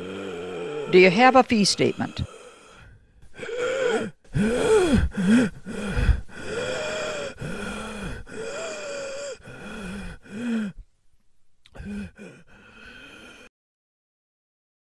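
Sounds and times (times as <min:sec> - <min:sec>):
woman groaning and crying out: 0:00.0 - 0:02.5.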